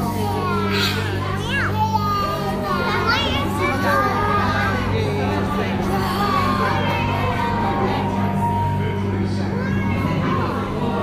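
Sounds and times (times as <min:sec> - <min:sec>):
background music with low drone: 0:00.0 - 0:11.0
children calling and squealing: 0:00.0 - 0:11.0.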